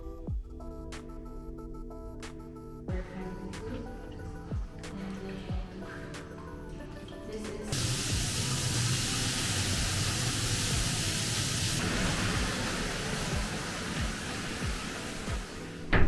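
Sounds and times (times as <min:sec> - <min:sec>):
background music with beat: 0:00.0 - 0:08.4, 0:13.3 - 0:16.0
water gushing from jets: 0:03.4 - 0:16.0.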